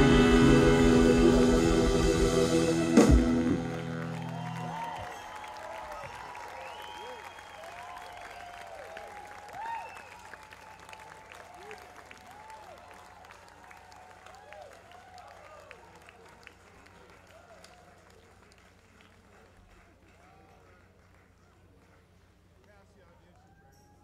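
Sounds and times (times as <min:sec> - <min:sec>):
drum and cymbal hit: 0:00.0 - 0:04.0
guitar chord ringing: 0:00.0 - 0:04.8
audience applauding and cheering: 0:00.0 - 0:22.1.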